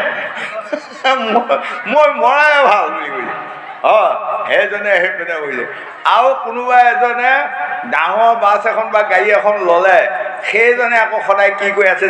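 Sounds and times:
man chuckling: 0:00.0 - 0:01.9.

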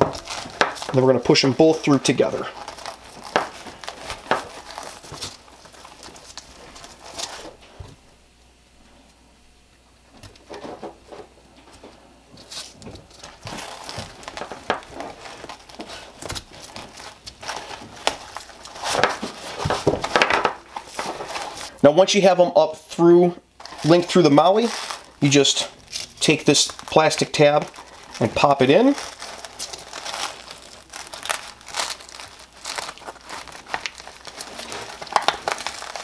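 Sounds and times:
nylon webbing rustling and scraping: 0:12.4 - 0:21.8, 0:23.6 - 0:36.0.

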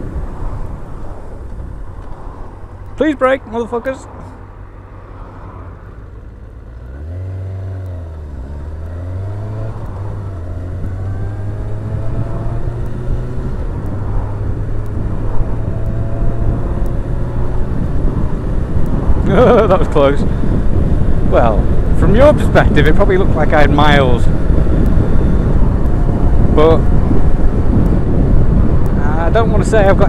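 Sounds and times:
motorcycle engine revving: 0:06.2 - 0:29.3.

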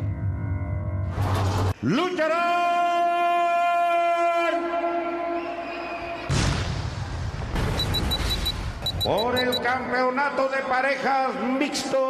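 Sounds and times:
crowd noise: 0:07.0 - 0:12.0.

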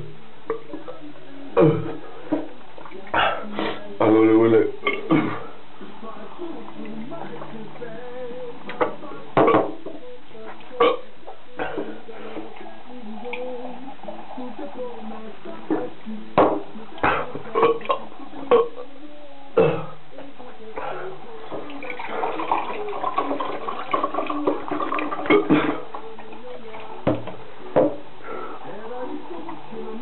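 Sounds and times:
man burping: 0:01.6 - 0:02.0, 0:04.6 - 0:05.5, 0:10.8 - 0:12.0, 0:17.0 - 0:18.8, 0:19.6 - 0:20.0, 0:25.3 - 0:25.9
water running and splashing: 0:21.4 - 0:27.4.

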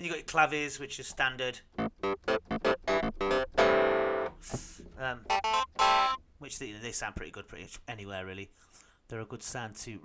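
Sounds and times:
synthesizer clavinet notes: 0:01.7 - 0:04.3, 0:05.2 - 0:06.2.

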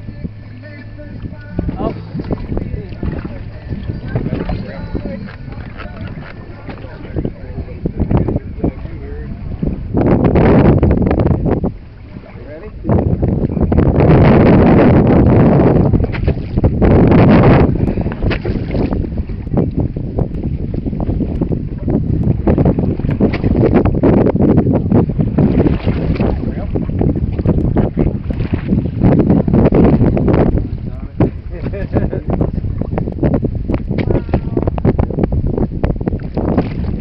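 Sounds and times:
water: 0:00.0 - 0:37.0
wind buffeting microphone: 0:00.0 - 0:37.0.

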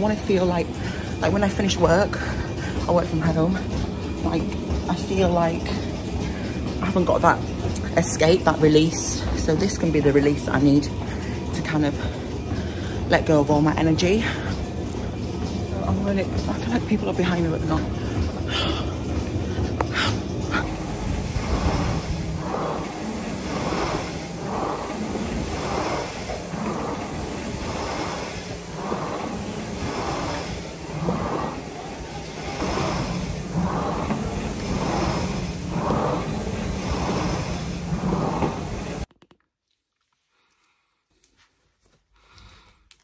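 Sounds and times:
treadmill motor hum: 0:00.0 - 0:39.1.

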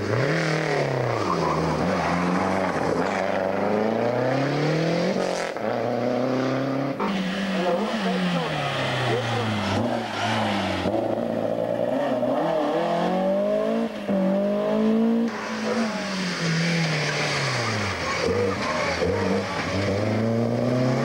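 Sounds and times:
rally car engine accelerating: 0:00.0 - 0:21.0.

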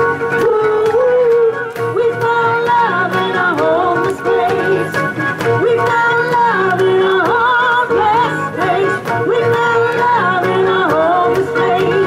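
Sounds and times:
live pop band playing: 0:00.0 - 0:12.0.

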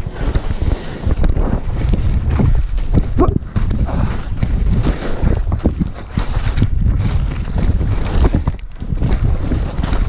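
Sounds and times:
skis scraping on snow: 0:00.0 - 0:10.0
wind buffeting microphone: 0:00.0 - 0:10.0.

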